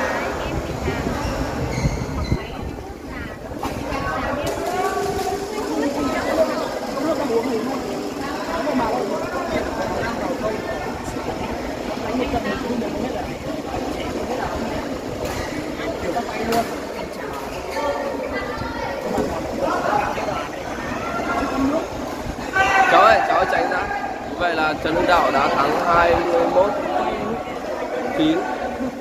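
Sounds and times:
indistinct chatter: 0:00.0 - 0:29.0.

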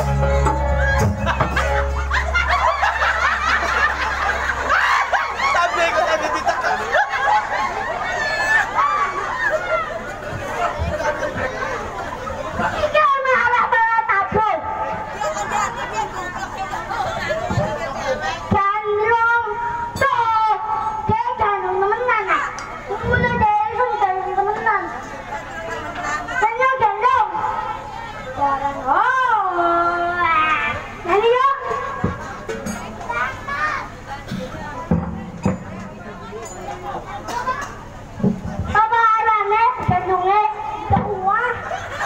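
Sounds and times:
crowd laughing: 0:00.0 - 0:18.6, 0:23.9 - 0:28.4, 0:30.4 - 0:34.9, 0:35.5 - 0:38.7, 0:41.1 - 0:42.0
child speaking into a microphone: 0:12.6 - 0:14.8, 0:18.2 - 0:25.0, 0:26.3 - 0:32.2, 0:33.0 - 0:34.7, 0:38.5 - 0:41.7.

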